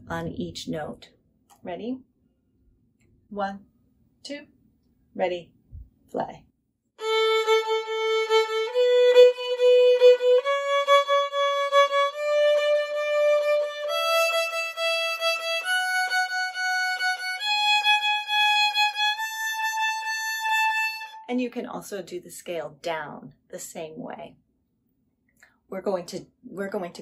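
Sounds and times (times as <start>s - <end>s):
violin playing a scale: 7.0s - 21.2s.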